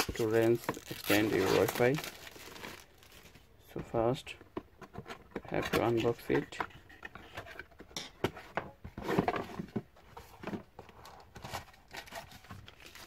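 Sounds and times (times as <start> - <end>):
cardboard packaging scraping and rustling: 0.0 - 3.4, 8.9 - 13.0.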